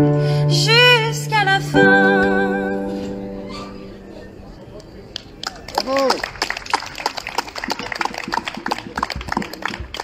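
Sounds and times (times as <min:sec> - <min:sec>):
audience clapping: 0:04.8 - 0:10.0.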